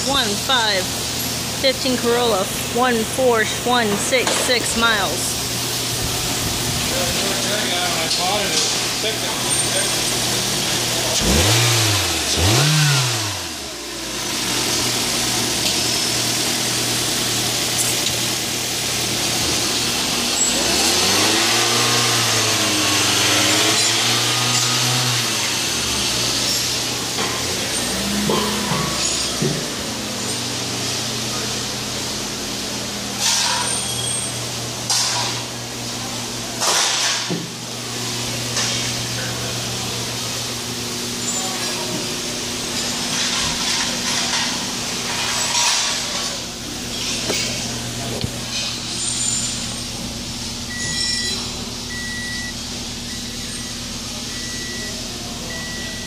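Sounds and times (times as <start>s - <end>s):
car engine revving and idling: 0.0s - 56.0s.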